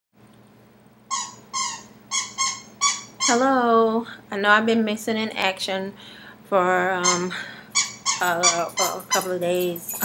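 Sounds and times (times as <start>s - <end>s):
high-pitched animal yelps: 1.1s - 3.4s, 7.0s - 8.6s.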